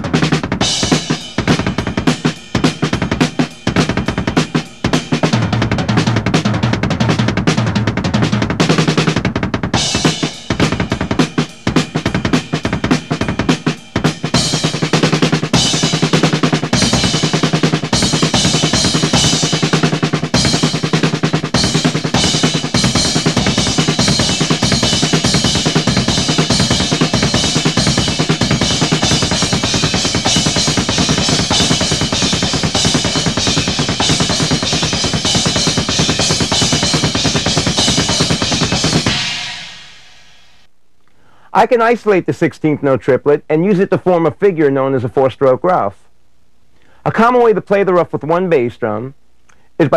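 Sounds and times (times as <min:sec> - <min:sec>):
cymbals: 0:00.0 - 0:07.7, 0:08.4 - 0:40.7
double bass drum kit playing: 0:00.0 - 0:40.7.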